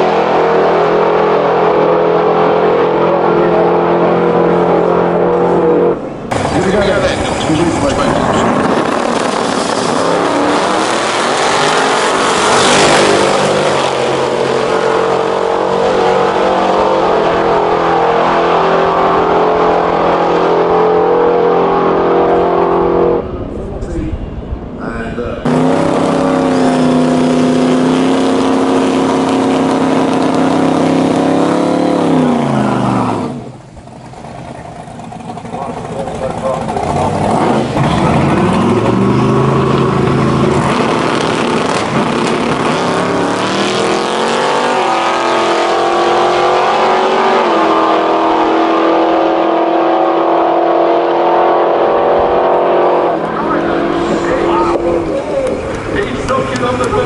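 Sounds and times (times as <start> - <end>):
loud car engine revving: 0.0 - 23.6, 25.4 - 33.8, 35.0 - 57.0.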